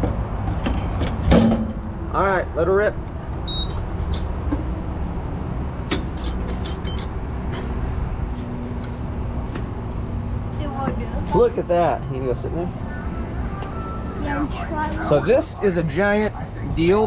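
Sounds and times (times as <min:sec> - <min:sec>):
short keypad beep: 0:03.5 - 0:03.8.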